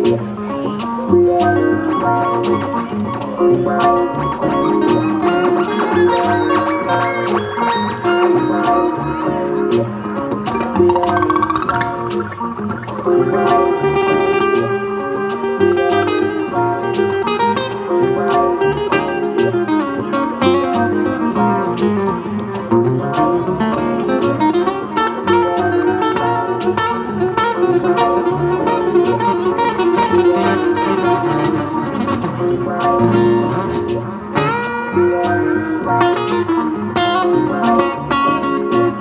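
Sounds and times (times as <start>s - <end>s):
acoustic guitar: 0.0s - 39.0s.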